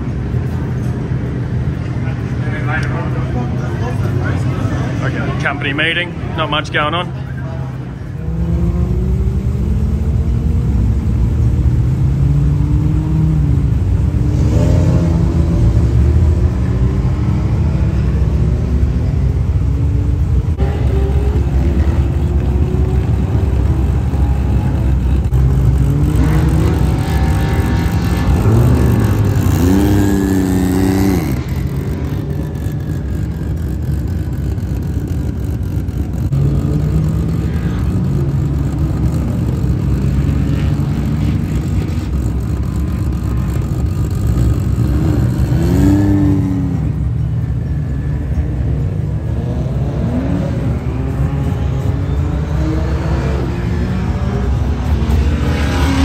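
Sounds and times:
car engines revving hard: 0.0 - 56.0.

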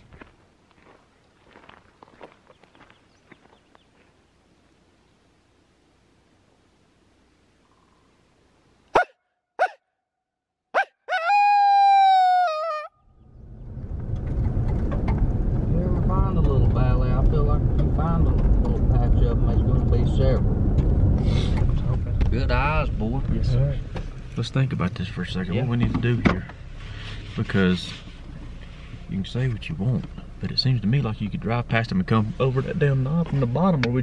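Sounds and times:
vehicle cabin road noise: 13.2 - 34.0.

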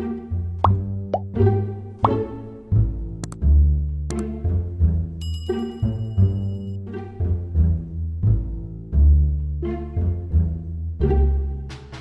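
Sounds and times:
playful children's music: 0.0 - 12.0.

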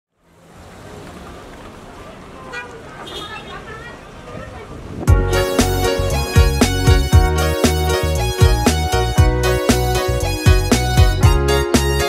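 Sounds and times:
traffic noise: 0.1 - 11.2
faint voices: 1.0 - 5.0.

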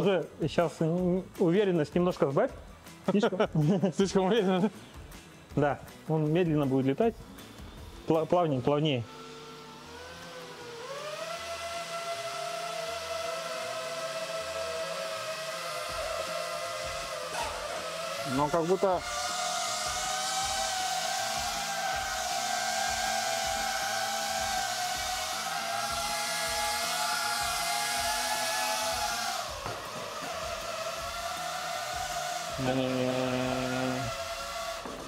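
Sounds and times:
drone propeller whine: 7.3 - 35.0.

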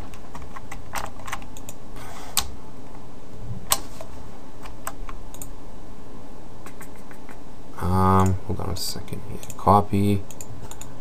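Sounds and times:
computer keyboard and mouse clicks: 0.0 - 1.8, 4.6 - 5.5, 6.6 - 7.4, 8.2 - 8.4, 9.4 - 10.9.

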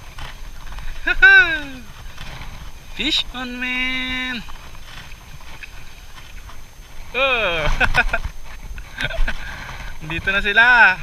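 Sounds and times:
man straining exclamation: 1.0 - 1.8.

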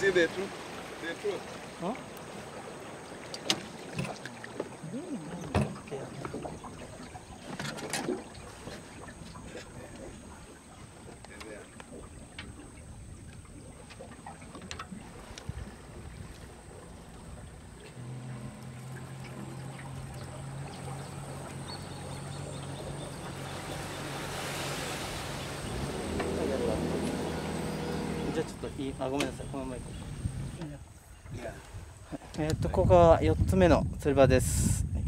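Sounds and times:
water rushing noise: 0.0 - 30.8
boat engine hum: 0.0 - 32.4.

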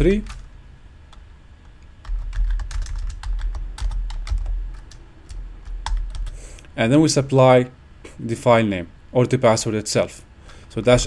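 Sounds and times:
typing on computer keyboard: 0.2 - 0.4, 2.0 - 6.4.

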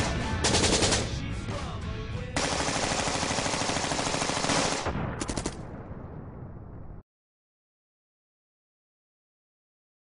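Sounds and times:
automatic gunfire bursts: 0.0 - 1.1, 2.4 - 5.6.

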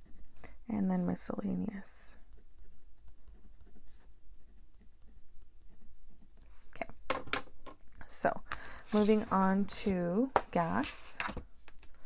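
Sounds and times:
pen scratching on paper: 2.2 - 6.3.

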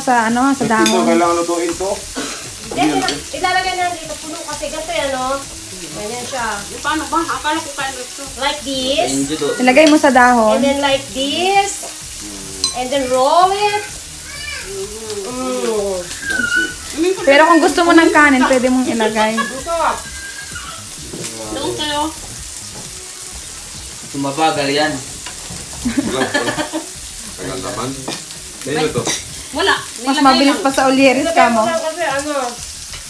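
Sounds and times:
voices: 0.0 - 22.2, 25.8 - 32.6
meat sizzling on grill pan: 0.0 - 33.0.

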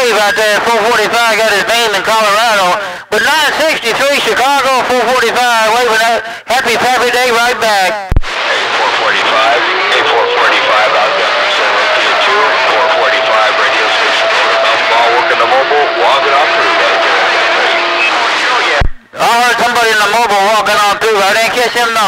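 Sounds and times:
radio whistles and tones: 0.0 - 2.0, 8.1 - 19.2
voice in radio static: 7.2 - 20.6.

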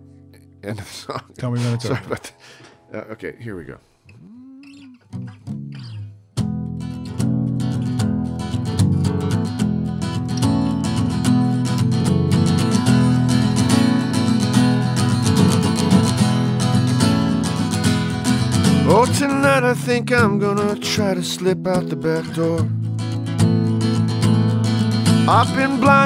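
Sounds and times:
acoustic guitar strumming: 1.6 - 3.2, 4.6 - 26.0
man singing: 18.8 - 22.7, 25.2 - 26.0.

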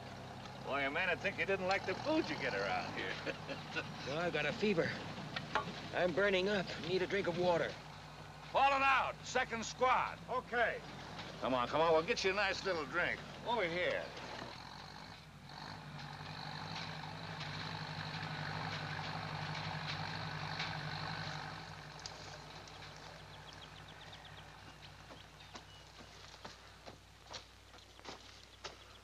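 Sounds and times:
vehicle engine running: 0.0 - 29.0.

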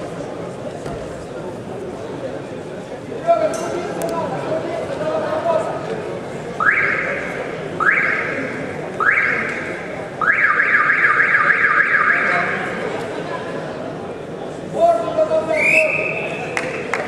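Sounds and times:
murmur of voices: 0.0 - 17.0.

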